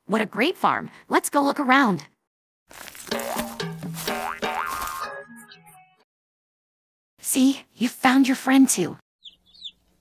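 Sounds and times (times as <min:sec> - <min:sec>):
cartoon music: 0:03.1 - 0:06.0
springy boing effects: 0:03.2 - 0:05.2.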